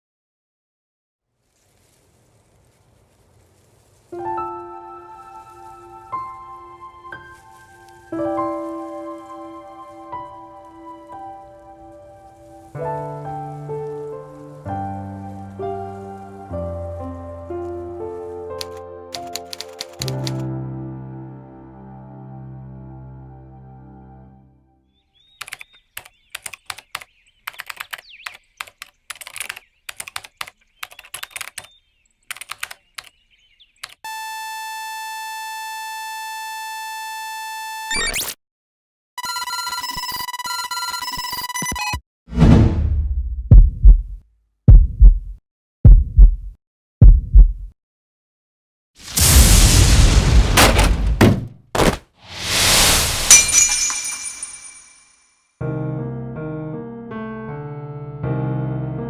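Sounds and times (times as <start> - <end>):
laptop keyboard typing: 18.6 - 20.4, 25.4 - 31.7, 32.3 - 33.1
shattering crash: 49.0 - 55.0
high ringing of settling pieces: 53.3 - 55.2.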